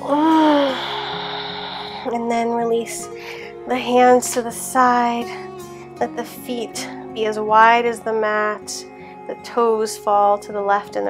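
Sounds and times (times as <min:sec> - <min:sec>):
person sighing and exhaling: 0:00.0 - 0:02.6
soft background music: 0:00.0 - 0:11.0.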